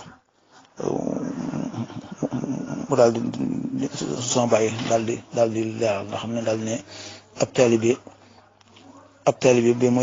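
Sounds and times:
person's rough voice: 0:00.8 - 0:05.4.

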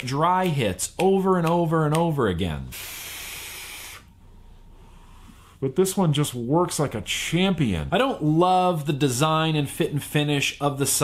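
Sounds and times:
airy hiss of vape draw: 0:02.7 - 0:04.1.

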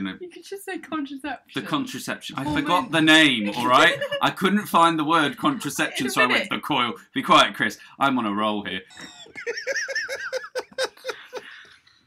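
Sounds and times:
high-pitched giggling: 0:02.4 - 0:04.3, 0:08.9 - 0:11.7.

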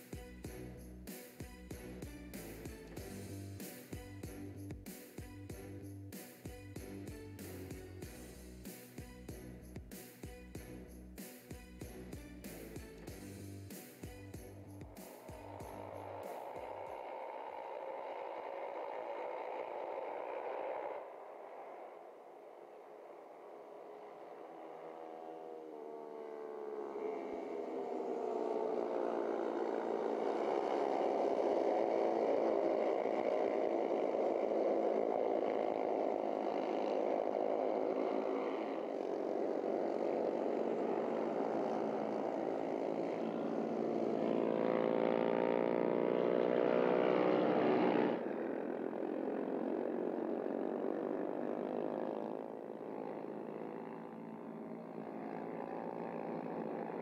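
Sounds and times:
racing motorcycles passing: 0:12.8 - 0:57.0.

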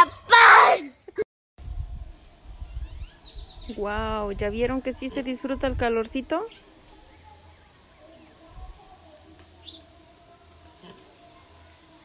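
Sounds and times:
wind rumbling on microphone: 0:01.6 - 0:06.4.

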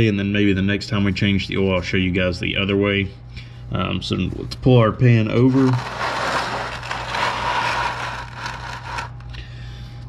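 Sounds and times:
drain pan scraping across floor: 0:05.4 - 0:09.1.

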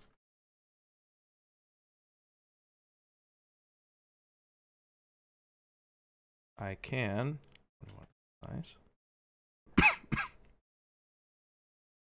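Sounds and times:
man coughing: 0:09.8 - 0:10.4.

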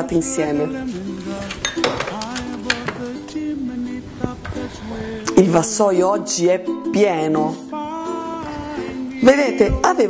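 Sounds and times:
background music: 0:00.0 - 0:10.0
dishes and utensils clinking: 0:01.2 - 0:03.4.

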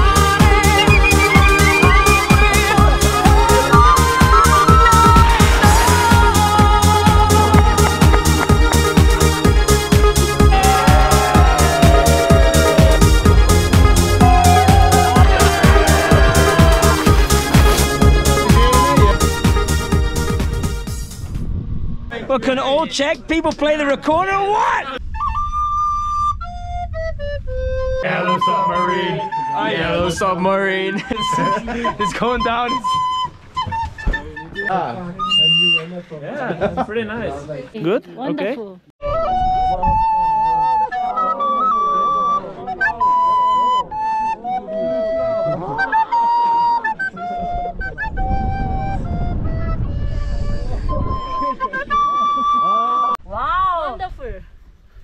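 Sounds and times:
wooden recorder playing tune: 0:00.6 - 0:06.0, 0:18.4 - 0:19.3, 0:25.0 - 0:36.0, 0:39.0 - 0:53.2.

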